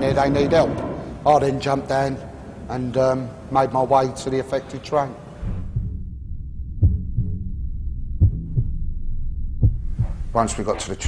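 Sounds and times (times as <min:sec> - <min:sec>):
heartbeat-like low thuds: 0:05.4 - 0:11.0
steady low drone: 0:05.4 - 0:11.0.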